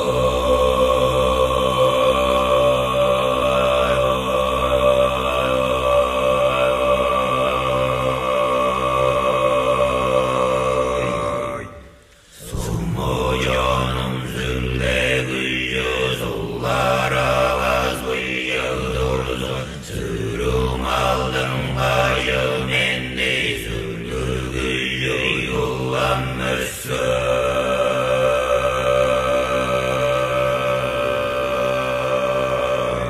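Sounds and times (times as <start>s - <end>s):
deep voices chanting: 0.0s - 33.0s.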